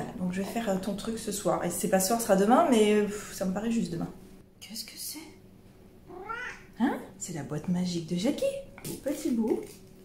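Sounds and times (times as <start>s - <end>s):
cat meowing: 6.1s - 6.7s.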